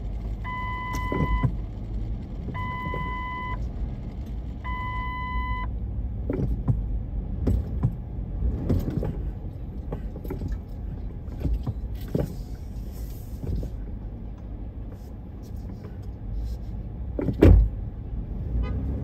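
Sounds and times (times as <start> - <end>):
city traffic rumbling: 0.0 - 19.0.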